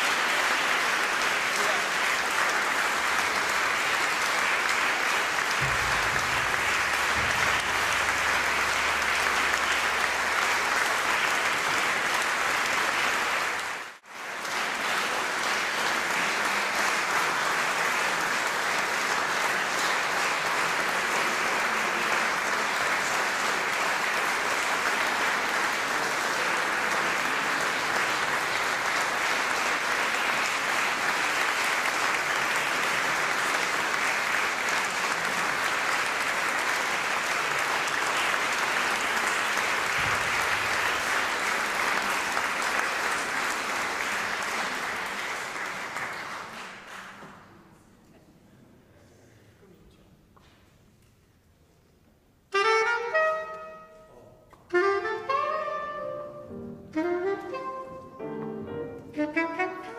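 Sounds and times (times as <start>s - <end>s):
audience applauding: 0.0s - 47.6s.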